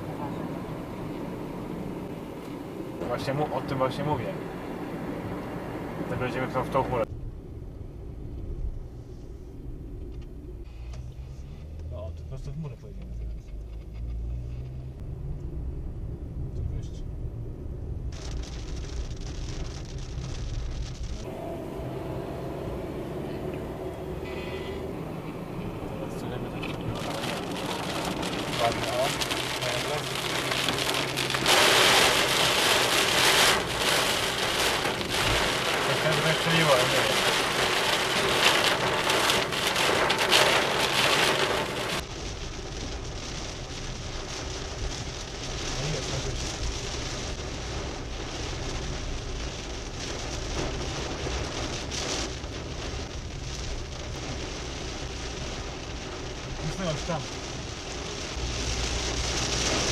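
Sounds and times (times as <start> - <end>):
heavy rain on a car: 0.0 - 7.1, 17.9 - 59.9
road noise: 0.0 - 59.9.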